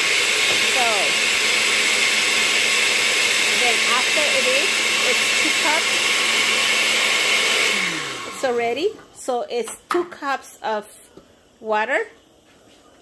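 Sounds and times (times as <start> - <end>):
blender motor whine: 0.0 - 8.9.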